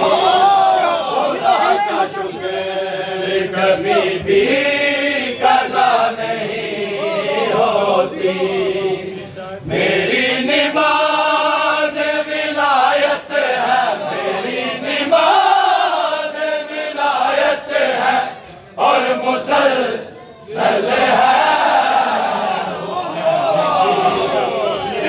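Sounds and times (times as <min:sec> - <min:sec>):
men chanting together: 0:00.0 - 0:25.0.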